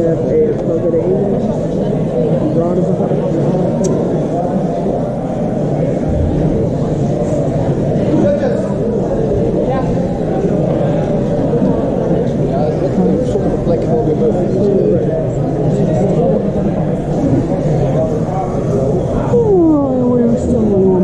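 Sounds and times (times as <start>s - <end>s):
murmur of conversation: 0.0s - 21.0s.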